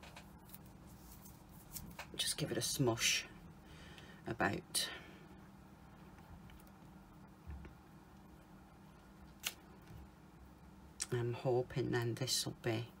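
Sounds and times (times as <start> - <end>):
low room hum: 0.0 - 13.0.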